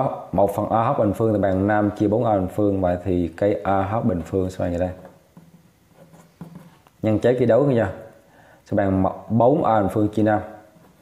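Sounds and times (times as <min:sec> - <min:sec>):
pen scratching on paper: 0:05.4 - 0:06.8.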